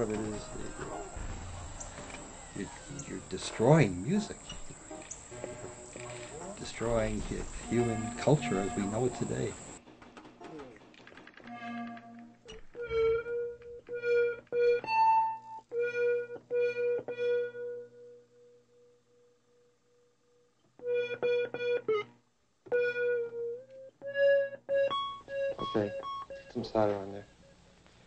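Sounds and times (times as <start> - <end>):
keyboard playing short notes: 0.0 - 9.8, 25.0 - 27.2.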